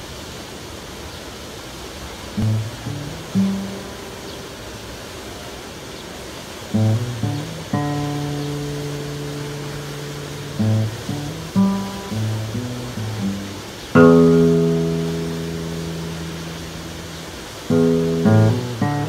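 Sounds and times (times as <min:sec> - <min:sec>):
fountain water: 0:00.0 - 0:19.0
slow instrumental guitar music: 0:02.4 - 0:05.1, 0:06.7 - 0:19.0.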